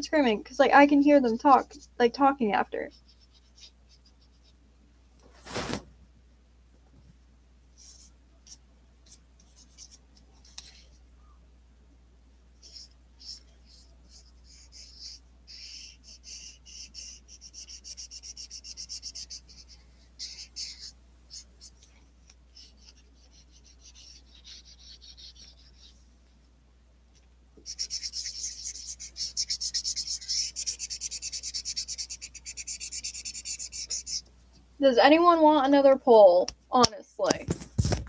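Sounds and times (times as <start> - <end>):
marker scribbling on paper: 1.1 - 2.0, 2.9 - 4.6, 7.8 - 10.8, 12.6 - 26.0, 27.6 - 34.2.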